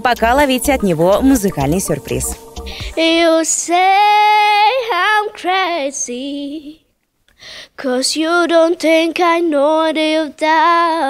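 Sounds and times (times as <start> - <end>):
boy singing unaccompanied: 2.9 - 6.9, 7.7 - 11.0.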